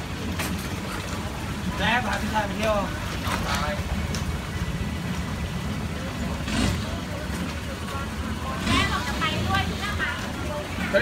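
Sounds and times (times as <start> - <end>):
boat engine droning: 0.0 - 11.0
voices talking: 0.0 - 11.0.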